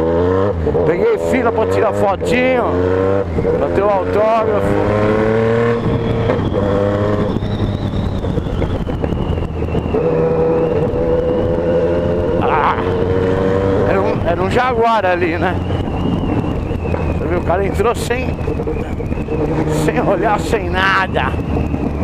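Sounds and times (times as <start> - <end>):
motorcycle engine: 0.0 - 22.0
wind rushing over microphone: 0.0 - 22.0.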